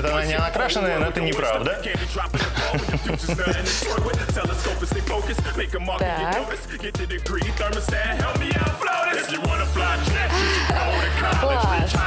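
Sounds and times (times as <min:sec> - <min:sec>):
man rapping over a beat: 0:00.0 - 0:12.0.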